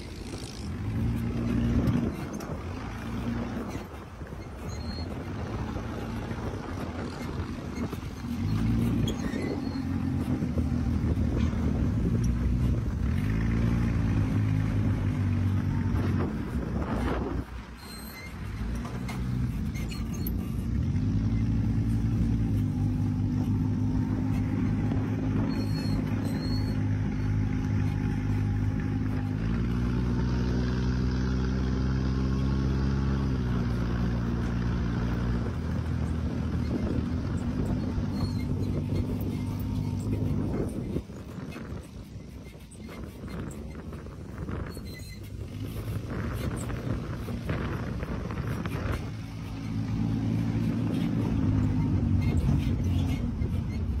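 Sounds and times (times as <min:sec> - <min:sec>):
dune buggy engine droning: 0:00.0 - 0:54.0
wind noise: 0:00.0 - 0:54.0.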